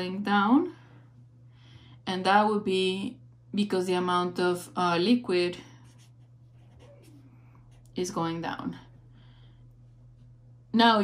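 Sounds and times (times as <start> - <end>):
marker scratching on paper: 5.8 - 8.3.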